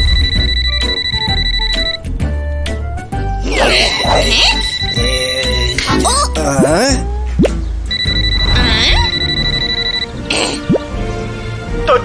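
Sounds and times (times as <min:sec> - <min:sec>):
high electronic phone ring: 0:00.0 - 0:02.0, 0:03.6 - 0:06.1, 0:07.9 - 0:10.2
upbeat background music: 0:00.0 - 0:12.0.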